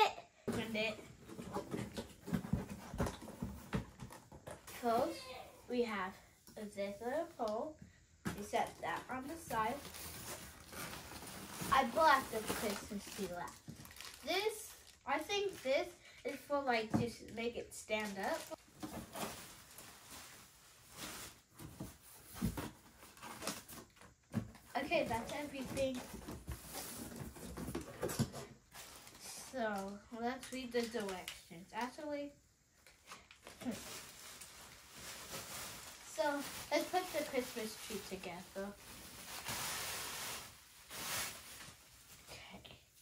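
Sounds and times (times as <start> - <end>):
plastic wrapping crinkling: 8.4 - 15.6, 17.9 - 27.6, 33.1 - 42.5.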